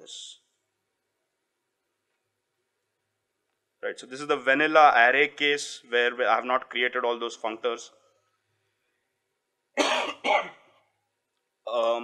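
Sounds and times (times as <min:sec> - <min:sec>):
man coughing loudly: 0:09.8 - 0:10.6.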